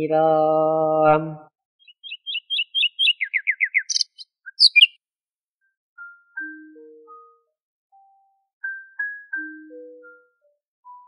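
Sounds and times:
songbird singing: 1.8 - 5.0.

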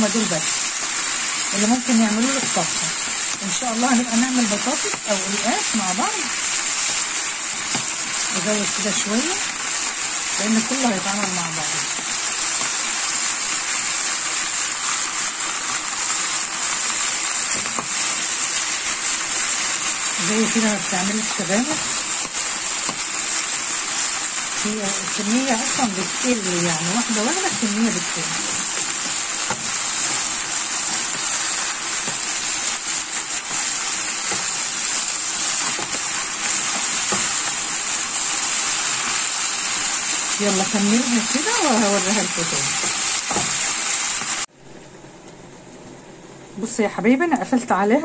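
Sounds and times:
leaves sizzling in hot oil: 0.0 - 44.5.

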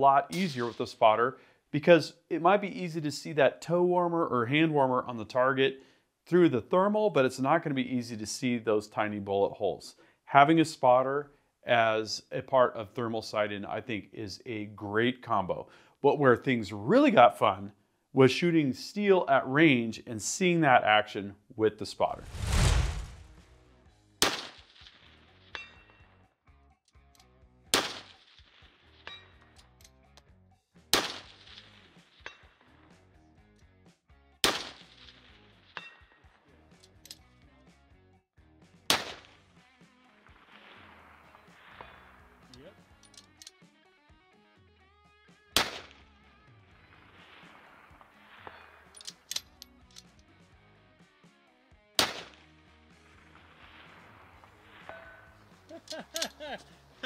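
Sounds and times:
rifle shots: 24.2 - 25.1, 27.7 - 28.6, 30.9 - 31.8, 34.4 - 35.2, 38.9 - 39.4, 45.6 - 46.0, 52.0 - 52.4
distant steel target clang: 54.8 - 55.5.

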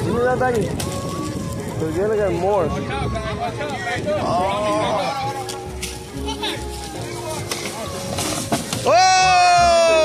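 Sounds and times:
children and adults chattering: 0.0 - 8.9
background music: 0.0 - 10.0
loud long whoa: 8.8 - 10.0.

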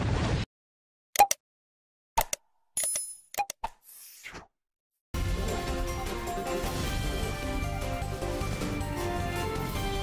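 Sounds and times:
mouse-click sounds: 1.2 - 1.4, 2.2 - 3.8.

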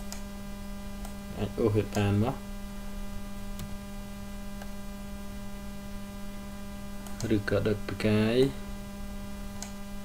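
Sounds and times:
electrical mains hum: 0.0 - 10.0
faint clicks: 7.0 - 7.3, 9.6 - 9.8.

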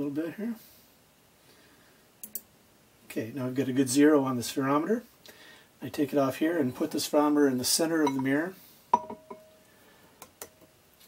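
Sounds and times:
metal clink on glass: 8.0 - 9.6.

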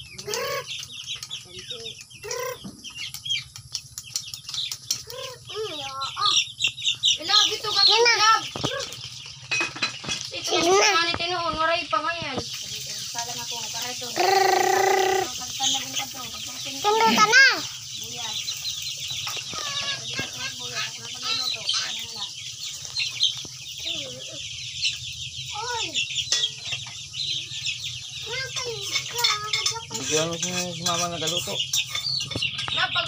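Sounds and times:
loud held chicken calls: 0.0 - 1.4, 2.1 - 11.1, 14.0 - 28.3
chicks peeping and clucking: 0.0 - 33.0.

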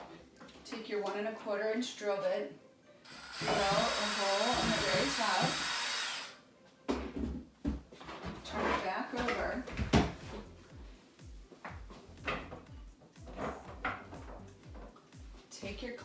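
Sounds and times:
plastic tote knocks and thumps: 9.2 - 10.4
background music with low beat: 9.2 - 16.0.

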